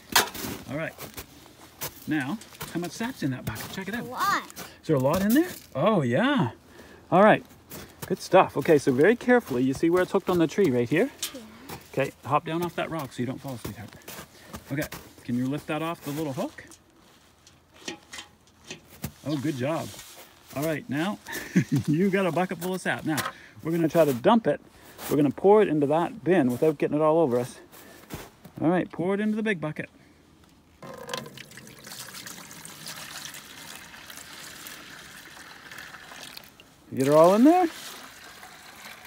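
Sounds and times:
metal bucket clicks and knocks: 17.4 - 19.1, 30.8 - 31.6
liquid pouring into plastic pail: 30.8 - 39.0.

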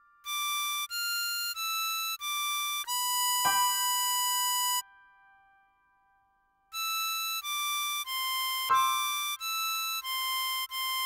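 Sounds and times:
harmonica note: 0.0 - 5.6, 6.7 - 11.0
faint accompanying chord: 3.4 - 6.2, 8.7 - 9.7.

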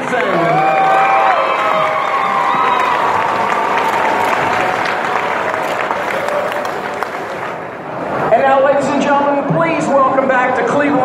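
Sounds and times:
audience applauding: 0.0 - 7.9.

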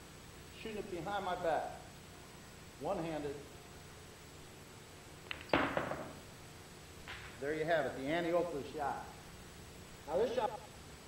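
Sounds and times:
billiard balls clacking: 5.2 - 6.2
cue tip striking ball: 5.3 - 6.2.

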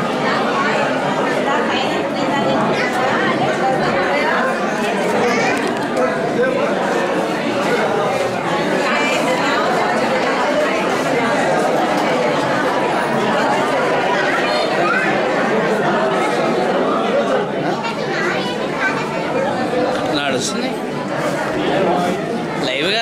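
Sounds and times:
crowd chatter echoing in hall: 0.0 - 23.0.

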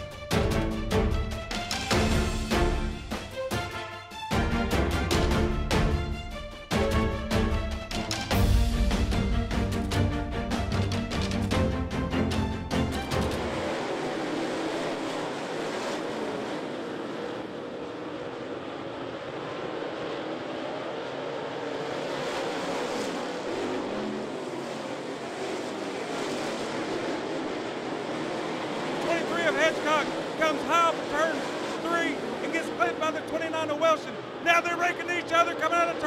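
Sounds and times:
intro music: 0.0 - 14.0
race cars running at speed: 0.0 - 36.0.

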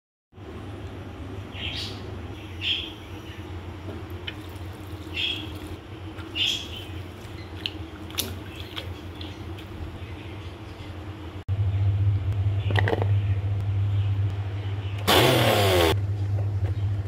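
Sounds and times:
steady low hum: 0.4 - 17.0
water dripping: 4.1 - 6.3, 6.9 - 9.8
leaves rinsed and squished in water: 4.1 - 10.2.

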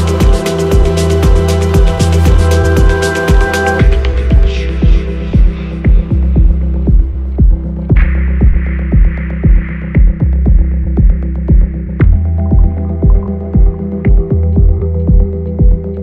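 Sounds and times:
filtered noise swell: 0.0 - 14.8
deep bassline: 0.0 - 16.0
muffled house music: 0.0 - 16.0
kick drum: 0.2 - 16.0.

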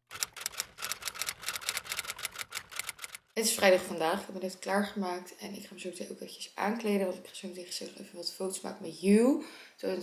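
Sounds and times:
typewriter key clicks: 0.1 - 3.2.

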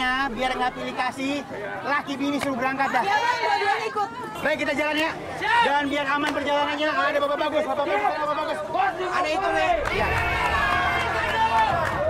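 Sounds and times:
crowd noise: 0.0 - 12.0.

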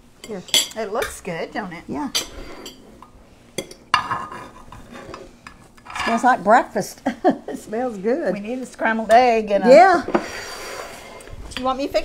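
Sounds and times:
metal spoon scraping baking dish: 4.0 - 6.4, 10.1 - 11.7.

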